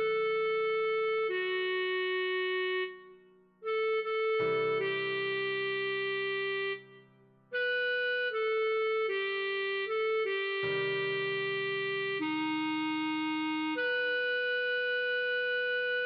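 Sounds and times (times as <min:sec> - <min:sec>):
clarinet slow melody: 0:00.0 - 0:16.0.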